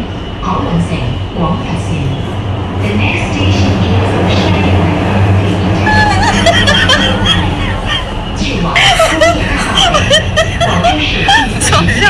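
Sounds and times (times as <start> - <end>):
subway train rumble: 0.0 - 12.0.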